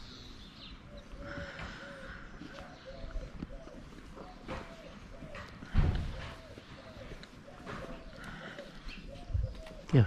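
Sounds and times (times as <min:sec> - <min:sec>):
footsteps on pavement: 0:01.5 - 0:08.9
dull low thump: 0:05.7 - 0:06.5.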